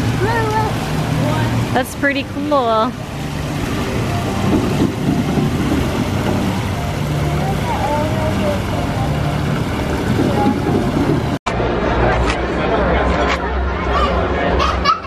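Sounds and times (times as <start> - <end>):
water pouring into pool: 0.0 - 11.4
water rushing and splashing: 0.0 - 11.4.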